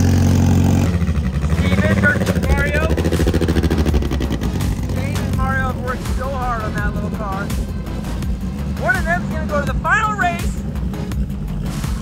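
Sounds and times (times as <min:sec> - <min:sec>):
race car engine idling loudly: 0:00.0 - 0:12.0.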